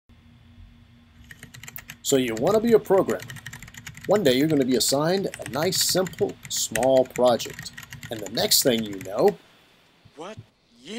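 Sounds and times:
mechanical keyboard key clicks: 1.2s - 9.4s.

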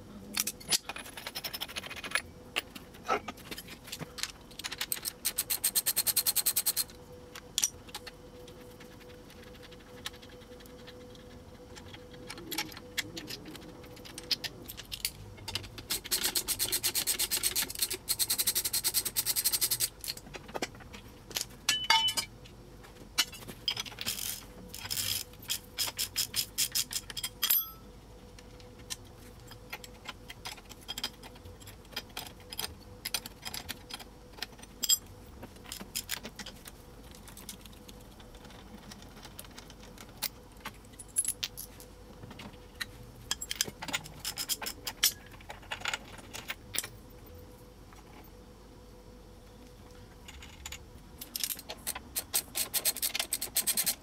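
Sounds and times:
metal parts and tools clinking: 0.3s - 6.9s, 11.8s - 22.3s, 23.2s - 27.8s, 29.5s - 37.7s, 38.4s - 41.8s, 42.8s - 47.0s.

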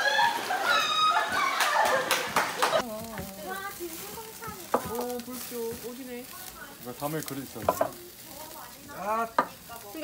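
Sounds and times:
meat sizzling on a grill: 2.5s - 10.0s
metal tongs turning meat: 2.8s - 10.0s.

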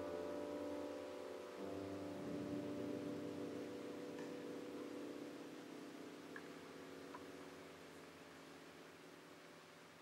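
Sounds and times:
piano guitar and reed notes: 0.0s - 6.4s.

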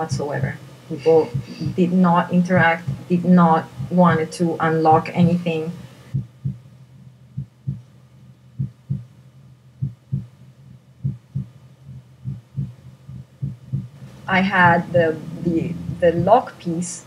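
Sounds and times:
steady low hum: 0.0s - 17.0s
heartbeat thumps: 0.1s - 6.7s, 7.3s - 7.9s, 8.5s - 9.1s, 9.8s - 16.5s.

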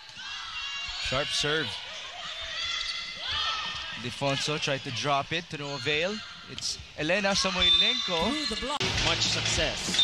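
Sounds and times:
arena crowd noise: 0.0s - 10.0s
shoes squeaking on court floor: 6.6s - 8.8s.

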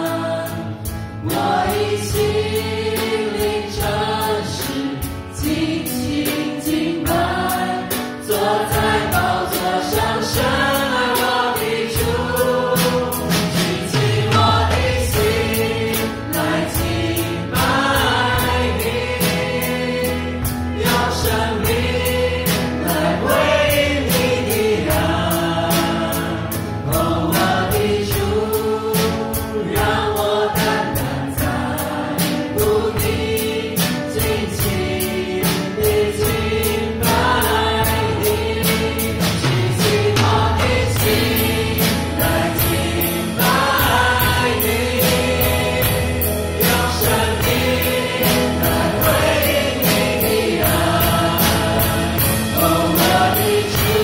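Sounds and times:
bass: 0.0s - 54.0s
drums keeping steady beat: 0.0s - 54.0s
keyboard: 0.0s - 54.0s
voices singing together: 0.0s - 54.0s.

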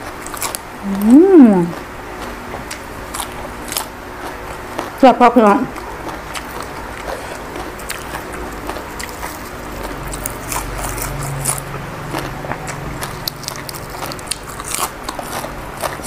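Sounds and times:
chewing crisp leaves: 0.0s - 16.0s.

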